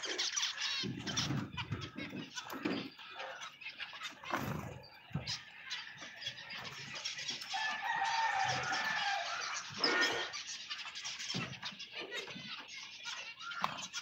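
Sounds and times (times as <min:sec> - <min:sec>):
finches chirping: 0:00.0 - 0:14.0.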